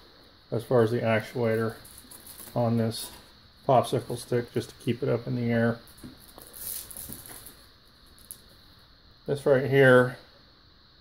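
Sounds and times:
handling rustling: 1.5 - 3.3, 5.9 - 8.5.

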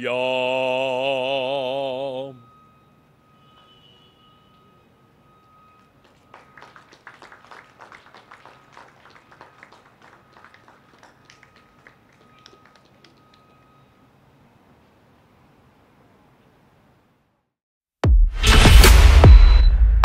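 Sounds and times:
faint high-pitched tone: 0.6 - 6.8
faint scattered clapping: 5.8 - 13.8.

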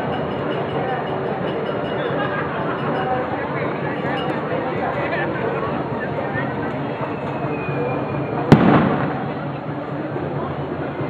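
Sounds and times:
firework bang with echo: 8.5 - 9.4.

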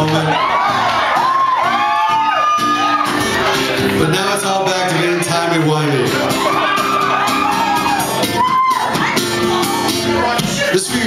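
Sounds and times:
audience whooping and shouting: 0.0 - 11.0
music: 0.0 - 11.0.

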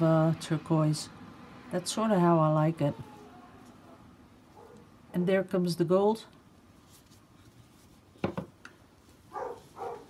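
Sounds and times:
muffled dog barking: 3.0 - 4.9, 9.3 - 10.0.

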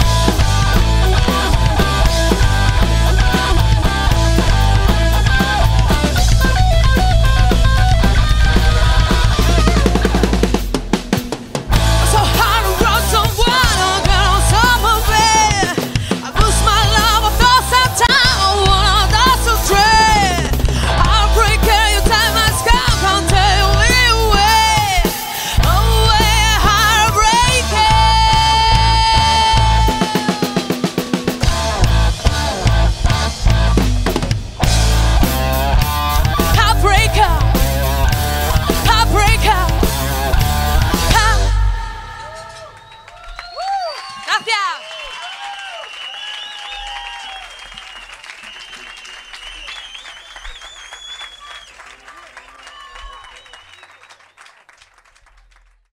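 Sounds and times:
electric guitar note bending: 0.0 - 11.1
drum fill: 0.0 - 42.7
rock band playing: 0.0 - 43.4
audience clapping and cheering: 14.5 - 31.5, 41.9 - 55.9
high whistles: 42.5 - 44.2, 44.8 - 54.6.

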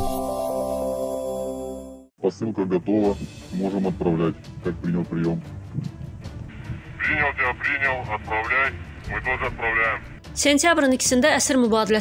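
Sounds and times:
man talking over radio: 7.0 - 10.0.

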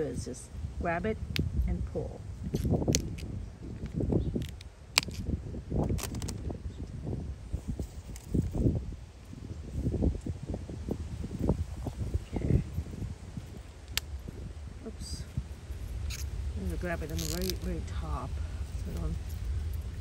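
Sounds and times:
wind on microphone: 0.0 - 20.0
vines rustling: 2.3 - 6.6, 7.4 - 20.0
pea pods snapping off: 2.5 - 5.2, 5.8 - 6.4, 13.8 - 14.2, 17.0 - 17.7.

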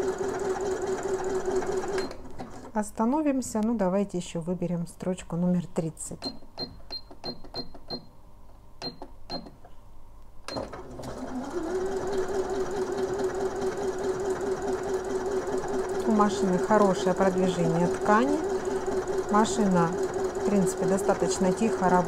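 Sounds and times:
sewing machine motor running: 10.8 - 22.0.

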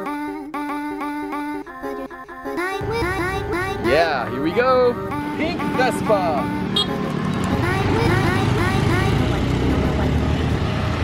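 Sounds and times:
scooter engine rumbling: 2.8 - 11.0.

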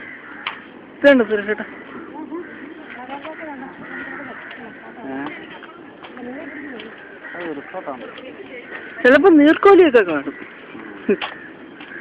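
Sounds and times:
overlapping voices talking: 1.1 - 12.0.

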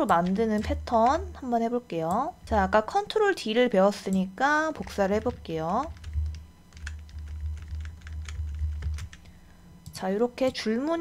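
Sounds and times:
low steady hum: 0.0 - 11.0
keyboard keys tapping: 4.8 - 9.2.

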